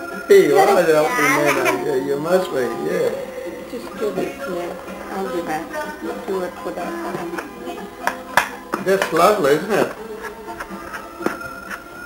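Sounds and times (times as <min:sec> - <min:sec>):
faint high whine: 0:00.0 - 0:08.0.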